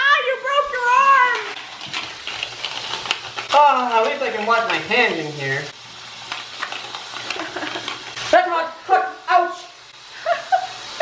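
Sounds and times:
tap water running into sink: 0.0s - 8.5s.

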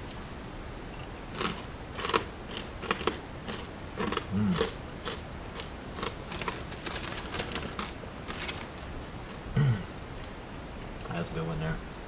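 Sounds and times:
pork rinds crunching: 1.3s - 9.4s.

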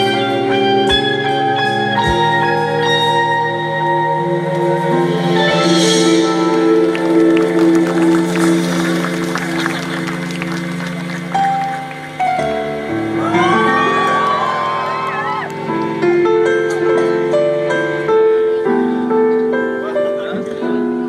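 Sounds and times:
live band playing: 0.0s - 18.5s.

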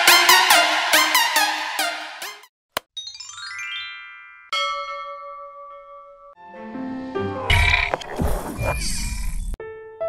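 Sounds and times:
bell-like synthesized chime: 3.0s - 6.4s.

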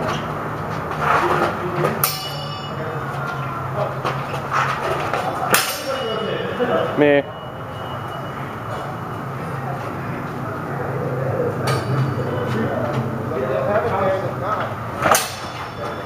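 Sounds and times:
swords clashing: 2.0s - 2.8s, 5.5s - 6.3s, 15.0s - 16.0s.

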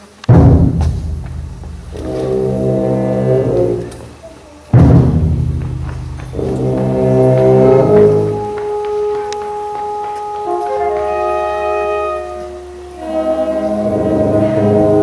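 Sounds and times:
drum stroke: 0.3s - 4.0s, 4.7s - 10.1s
wind band playing: 0.3s - 15.0s.

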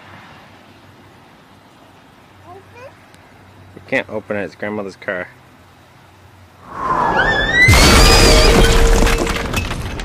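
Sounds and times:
rushing whoosh with whistles: 6.6s - 7.9s
crackling debris: 6.8s - 10.0s
loud crash with deep rumble: 6.8s - 10.0s.

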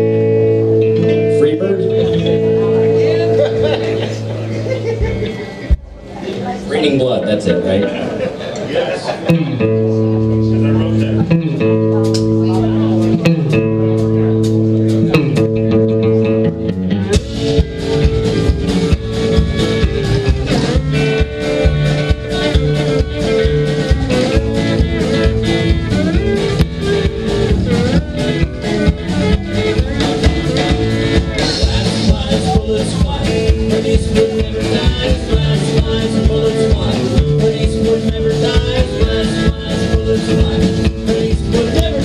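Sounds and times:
drums steady beat: 0.0s - 6.2s, 10.9s - 42.0s
pedal steel guitar: 0.0s - 6.7s, 9.2s - 42.0s
electric guitar chords: 0.0s - 42.0s
upright bass: 0.0s - 42.0s.

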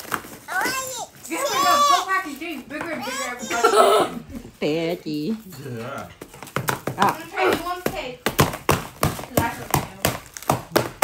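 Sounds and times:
stick beating cardboard pinata: 6.2s - 11.0s.

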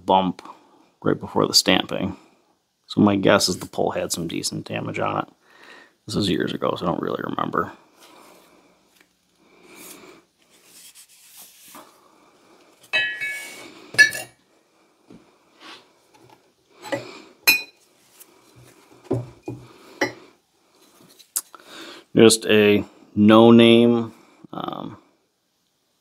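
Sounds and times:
rubbing and shuffling: 7.9s - 13.7s, 17.8s - 19.7s
metal axe heads clinking: 13.0s - 14.4s.

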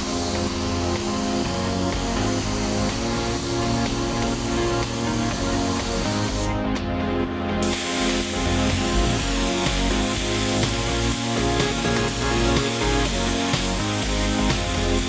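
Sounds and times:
paint spray gun hissing: 0.0s - 6.5s, 7.6s - 15.0s
background music: 0.0s - 15.0s.

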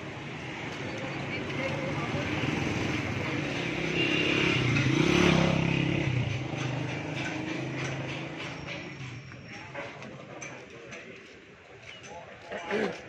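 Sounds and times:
motorcycle engine passing: 1.8s - 8.6s.

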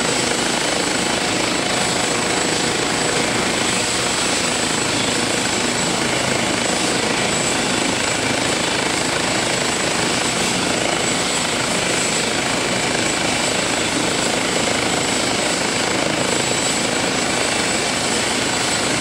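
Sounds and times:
helicopter rotor and turbines running: 0.0s - 19.0s.

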